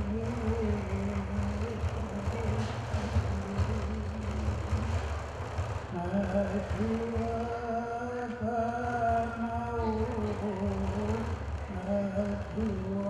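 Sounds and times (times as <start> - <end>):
man chanting low: 0.0 - 5.0, 5.9 - 13.0
frame drum beaten rapidly: 0.0 - 13.0.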